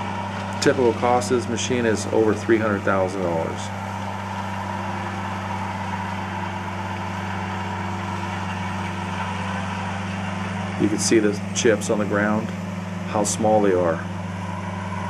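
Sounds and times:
shredder engine droning: 0:00.0 - 0:15.0.

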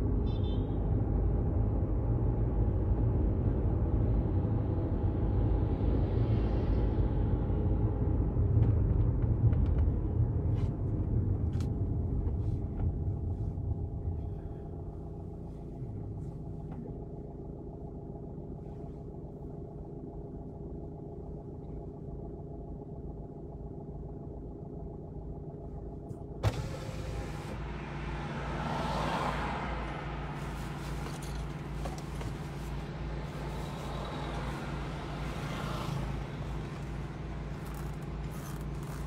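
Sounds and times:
car engine and road noise: 0:00.0 - 0:39.0
engine idling hum: 0:00.0 - 0:39.0
outside traffic noise: 0:00.0 - 0:39.0.

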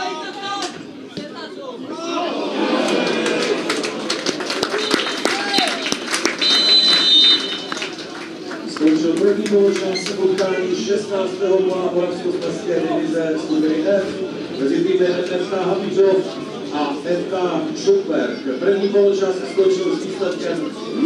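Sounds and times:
spectators talking and shouting: 0:00.0 - 0:21.0
spectators clapping: 0:02.7 - 0:10.5
referee's whistle blasts: 0:06.4 - 0:07.7.

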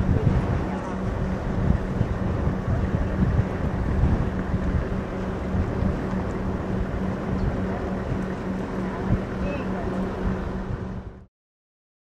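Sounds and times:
steady low hum: 0:00.0 - 0:11.3
wind buffeting microphone: 0:00.0 - 0:11.3.

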